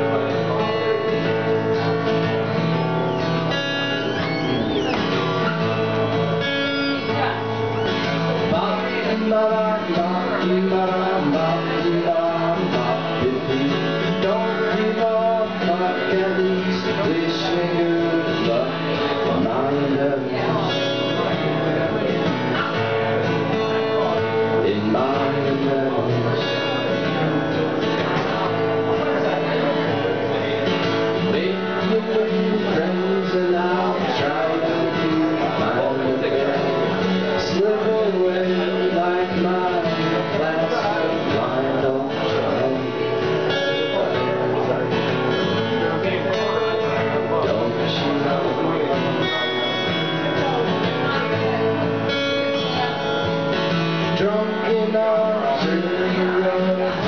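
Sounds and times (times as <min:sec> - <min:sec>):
acoustic guitar strumming: 0:00.0 - 0:57.0
man singing: 0:00.0 - 0:57.0.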